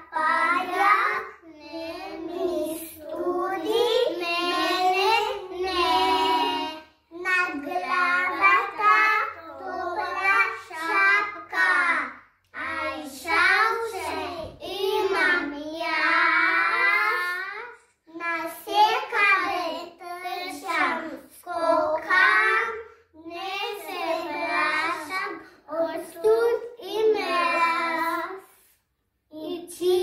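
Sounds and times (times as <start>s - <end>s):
children singing together: 0.0s - 28.7s.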